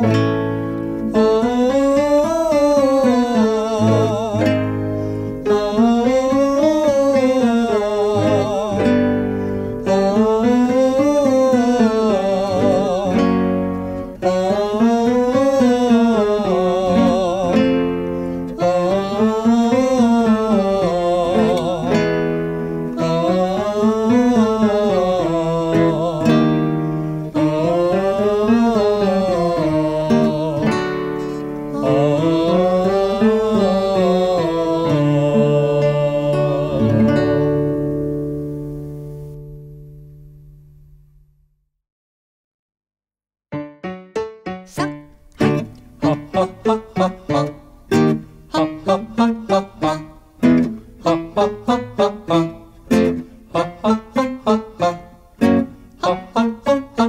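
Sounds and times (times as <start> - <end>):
man singing scales: 0.0 - 37.9, 44.7 - 57.0
digital piano: 0.0 - 40.8, 43.5 - 57.0
classical guitar: 0.0 - 41.4, 43.6 - 57.0
woman singing scales: 1.1 - 4.8, 5.4 - 26.7, 27.3 - 37.5, 44.7 - 57.0.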